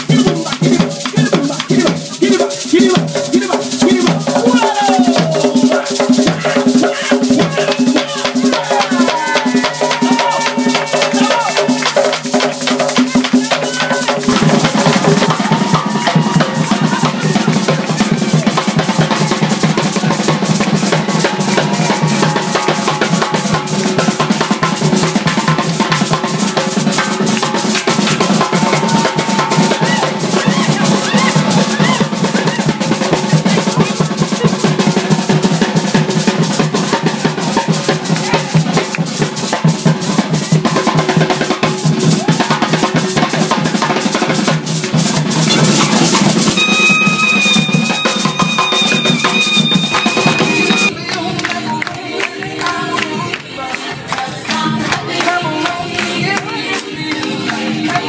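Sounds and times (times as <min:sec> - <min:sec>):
pitched melody: 0:00.0 - 0:25.6, 0:45.4 - 0:51.0
folk hand drumming: 0:00.0 - 0:53.4
music with high held notes: 0:45.2 - 0:51.0.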